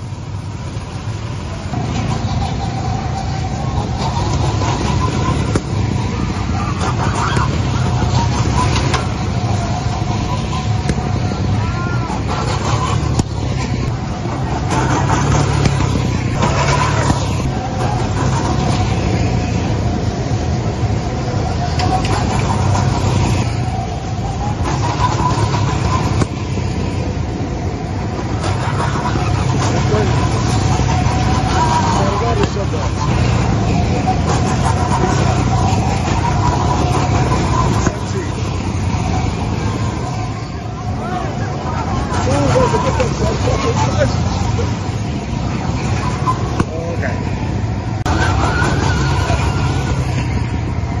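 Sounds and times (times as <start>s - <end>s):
go-kart engines running: 0.0s - 51.0s
people talking: 1.3s - 27.3s, 28.2s - 51.0s.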